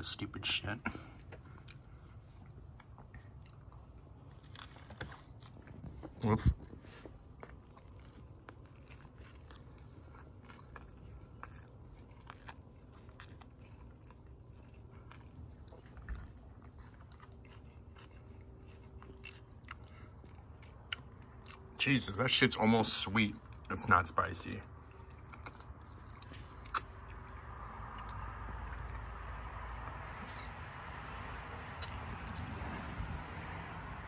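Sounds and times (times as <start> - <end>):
person chewing taco: 0.5 - 34.0.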